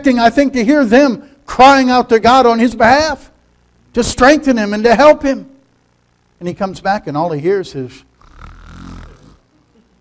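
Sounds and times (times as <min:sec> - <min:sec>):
man imitating a snore: 0:08.2 - 0:09.5.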